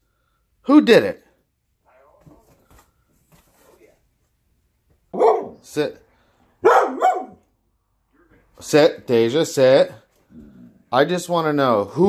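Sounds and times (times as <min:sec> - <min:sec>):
dog barking: 0:05.1 - 0:05.7, 0:06.6 - 0:07.5.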